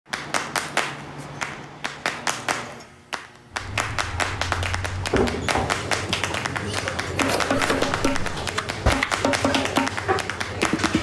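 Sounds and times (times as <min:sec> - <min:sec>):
low steady hum: 0:03.5 - 0:09.4
sharp taps and knocks: 0:03.6 - 0:11.0.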